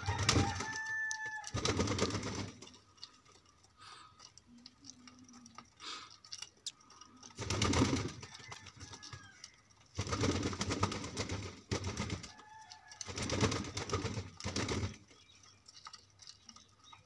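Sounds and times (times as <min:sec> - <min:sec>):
beaks pecking grain: 0:00.0 - 0:17.0.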